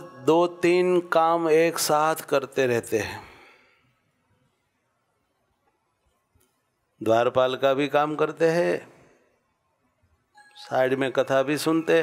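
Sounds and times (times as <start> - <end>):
man speaking: 0.0 - 3.4, 7.0 - 9.0, 10.5 - 12.0.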